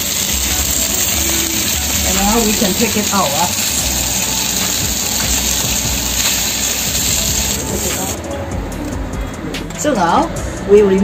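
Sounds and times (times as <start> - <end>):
fish sizzling in hot oil: 0.0 - 8.2.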